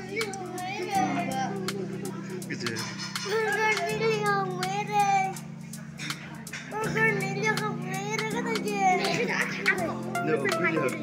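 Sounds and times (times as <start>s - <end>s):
background music: 0.0s - 11.0s
children chattering and laughing: 0.0s - 11.0s.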